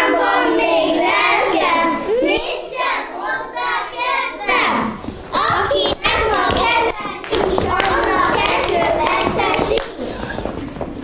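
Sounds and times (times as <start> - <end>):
children chanting together: 0.0 - 10.0
hand claps: 5.9 - 10.0.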